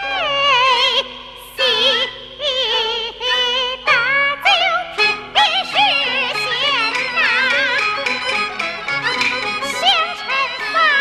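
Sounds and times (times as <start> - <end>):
woman singing opera: 0.0 - 7.8, 9.6 - 11.0.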